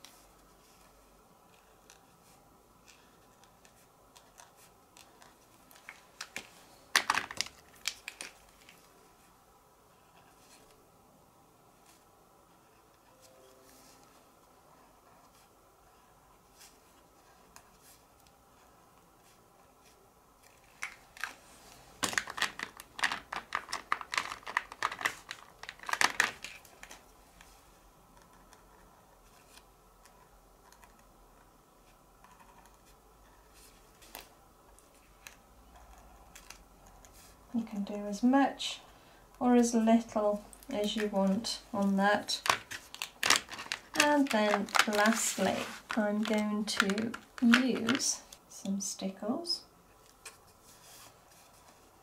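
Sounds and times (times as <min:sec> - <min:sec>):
plastic pen caps clicking: 0:45.9 - 0:48.1.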